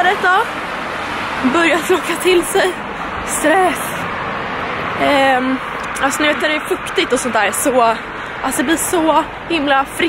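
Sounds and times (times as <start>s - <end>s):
woman's voice: 0.0s - 0.5s, 1.4s - 4.1s, 5.0s - 10.0s
traffic on a wet road: 0.0s - 10.0s.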